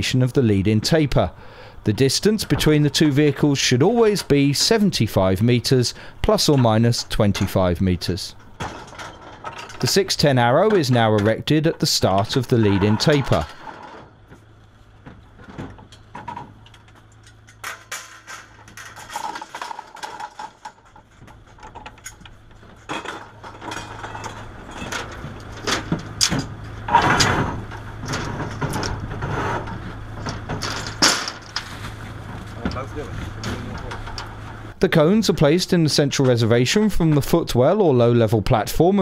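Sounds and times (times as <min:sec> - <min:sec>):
truck engine humming: 0:22.2 - 0:35.5.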